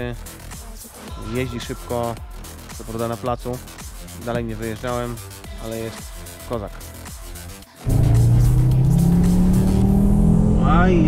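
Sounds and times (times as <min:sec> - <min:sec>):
car engine accelerating hard: 0:07.9 - 0:11.0.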